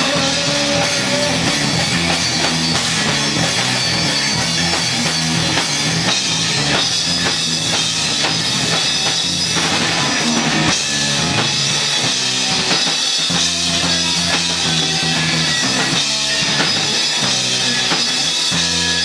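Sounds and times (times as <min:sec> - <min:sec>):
drum kit beat: 0:00.0 - 0:19.0
electric guitar: 0:00.0 - 0:19.0.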